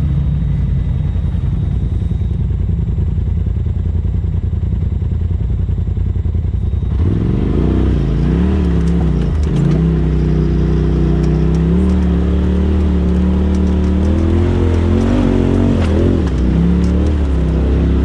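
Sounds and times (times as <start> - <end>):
off-road vehicle engine revving: 6.8 - 18.0
light clatter over rocks: 8.1 - 18.0.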